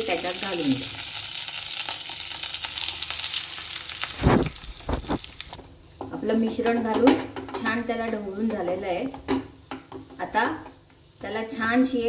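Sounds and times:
light sizzle of oil: 0:00.0 - 0:12.0.

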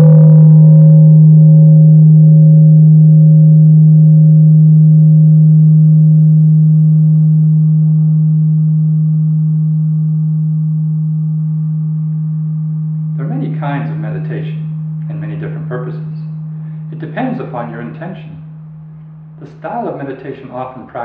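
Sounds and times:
gong ringing: 0:11.4 - 0:19.4.

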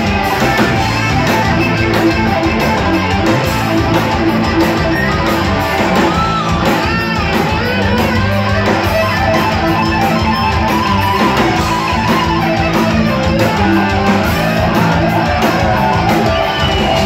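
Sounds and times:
heavy metal band playing: 0:00.0 - 0:17.0.

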